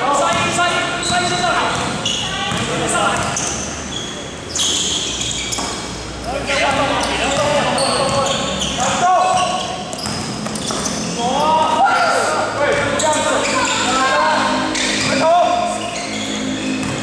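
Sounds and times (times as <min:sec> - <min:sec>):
voices calling out: 0:00.0 - 0:17.0
shoe squeals: 0:00.1 - 0:17.0
basketball dribbling on court: 0:00.2 - 0:03.4, 0:06.6 - 0:08.6, 0:09.3 - 0:11.1, 0:16.8 - 0:17.0.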